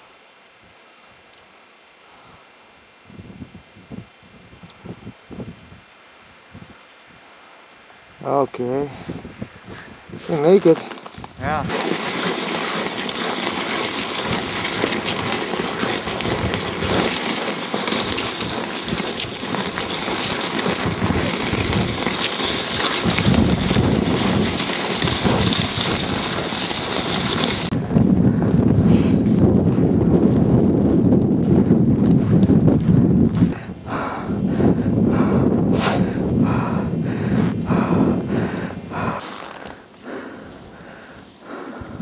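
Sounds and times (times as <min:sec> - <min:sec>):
steady hiss: 0:00.0 - 0:27.7
wind buffeting microphone: 0:03.1 - 0:05.9, 0:08.8 - 0:10.6, 0:11.2 - 0:39.2, 0:40.1 - 0:42.0.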